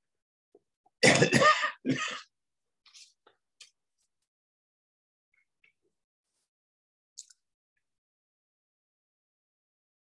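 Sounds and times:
man coughing: 0:01.0 - 0:02.3.

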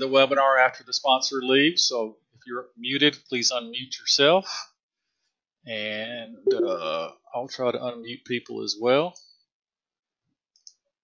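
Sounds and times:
man's voice: 0:00.0 - 0:04.6, 0:05.7 - 0:09.2.

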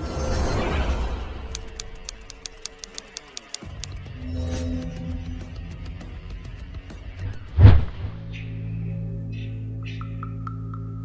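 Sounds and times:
typing-like clicks: 0:01.5 - 0:04.0
low music: 0:01.5 - 0:11.0.

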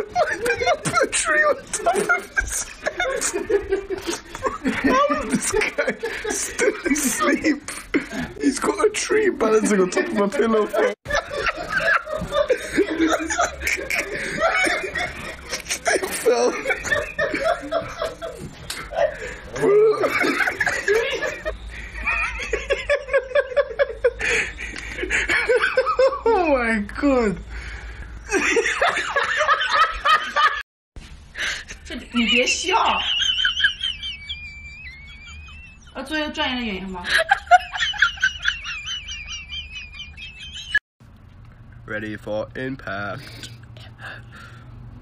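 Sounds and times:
people laughing: 0:00.0 - 0:26.4, 0:28.3 - 0:30.6, 0:31.4 - 0:40.8.

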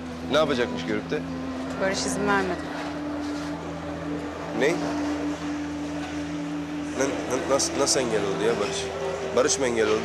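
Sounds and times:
low hum of held tones: 0:00.0 - 0:10.0.

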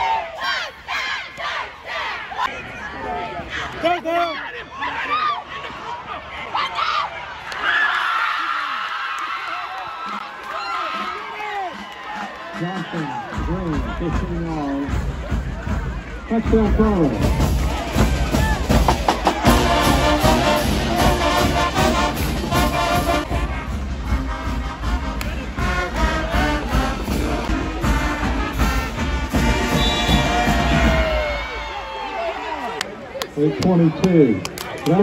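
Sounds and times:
crowd shouting: 0:00.0 - 0:13.4, 0:17.2 - 0:33.1
marching band brass and drums: 0:10.1 - 0:31.7.

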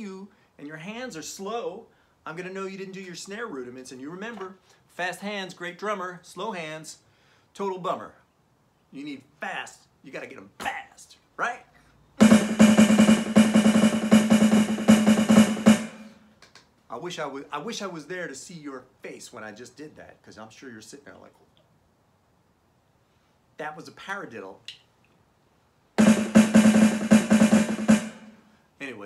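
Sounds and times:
electronic snare drum roll: 0:12.2 - 0:16.2, 0:26.0 - 0:28.4.

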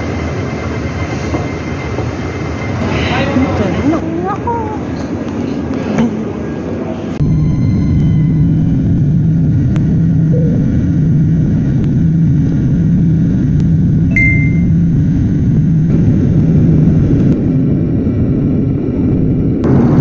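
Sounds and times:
jet engine rumble in cabin: 0:01.9 - 0:14.1, 0:15.0 - 0:20.0
short high beep: 0:14.1 - 0:14.8.

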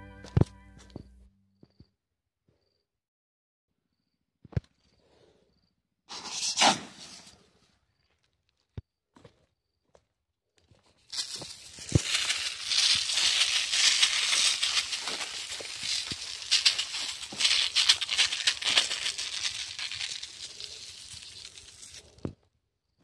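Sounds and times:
granules pattering on dry leaves: 0:11.0 - 0:22.3.

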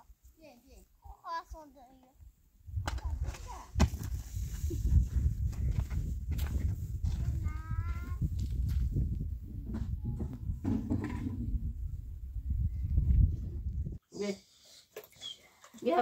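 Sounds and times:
wind buffeting microphone: 0:02.6 - 0:14.0
footsteps on stony ground: 0:03.8 - 0:09.2.

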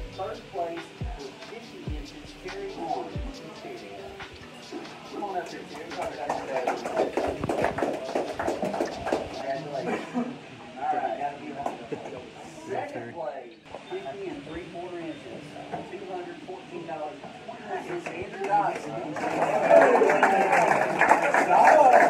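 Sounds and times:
indistinct crowd talking: 0:00.0 - 0:22.0
people clapping: 0:02.4 - 0:09.9, 0:17.9 - 0:22.0.

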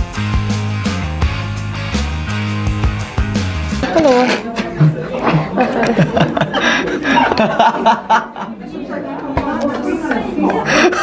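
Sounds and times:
people talking: 0:03.8 - 0:11.0
people laughing: 0:04.2 - 0:09.2, 0:09.9 - 0:11.0.

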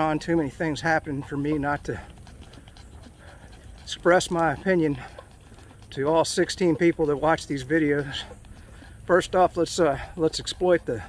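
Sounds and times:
rapid panting breaths: 0:00.0 - 0:11.0.

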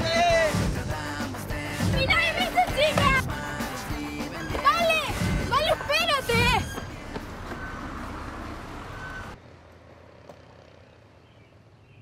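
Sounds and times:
street traffic rushing: 0:00.0 - 0:12.0.

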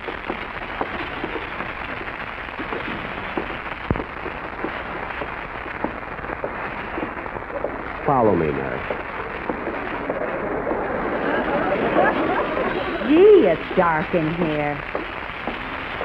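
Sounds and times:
old radio recording hiss and crackle: 0:00.0 - 0:16.0.

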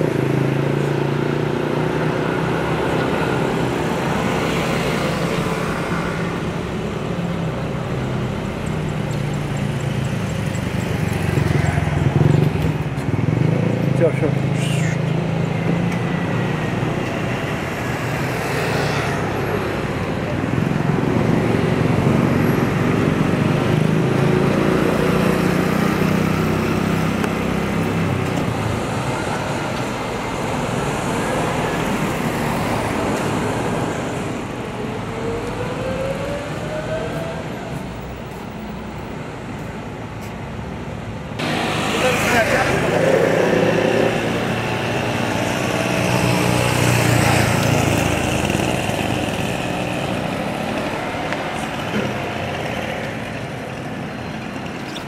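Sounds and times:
road traffic: 0:00.0 - 0:55.0
people talking: 0:13.9 - 0:15.1, 0:41.9 - 0:43.4.

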